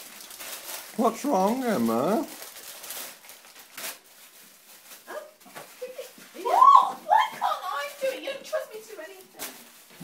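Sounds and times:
high-pitched yelp: 6.4 - 7.9.

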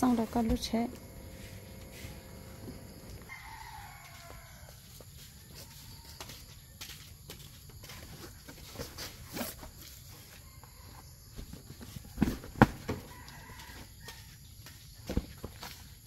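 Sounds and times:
rooster crowing: 1.9 - 6.4, 12.8 - 14.4.

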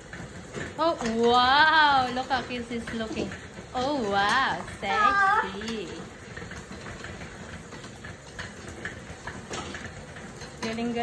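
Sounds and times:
cross trainer flywheel whir: 0.0 - 11.0.

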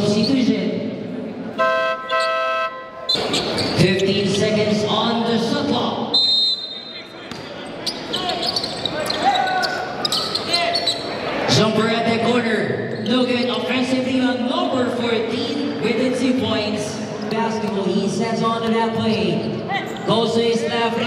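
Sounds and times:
scoreboard buzzer horn: 1.6 - 3.1.

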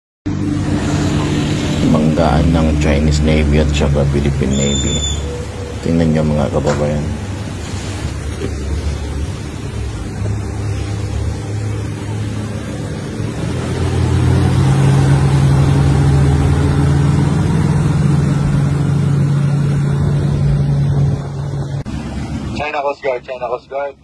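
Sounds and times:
motorboat engine running: 0.3 - 23.9
water rushing: 0.3 - 24.0
wind on microphone: 7.0 - 22.6.

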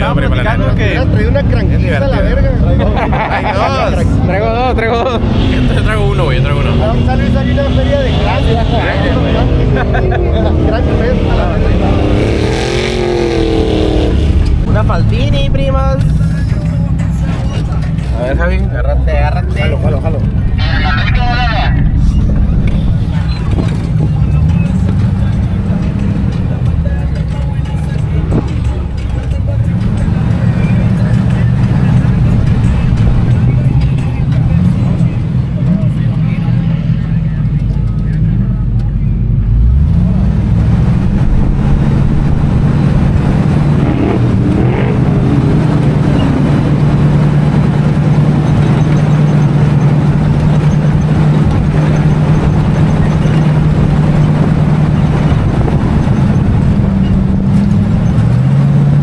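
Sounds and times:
off-road engine revving: 0.0 - 59.0.

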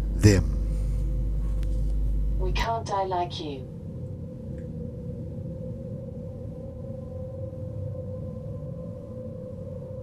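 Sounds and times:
low rumble: 0.0 - 9.2.

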